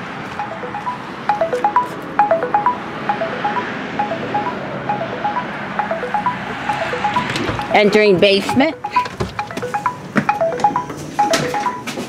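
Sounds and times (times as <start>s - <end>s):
bell-like chime tune: 0.4s - 12.0s.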